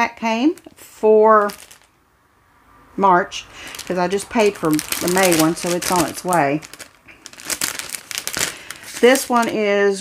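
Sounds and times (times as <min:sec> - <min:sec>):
packaging crinkling: 0:00.6 - 0:02.0, 0:03.6 - 0:09.8.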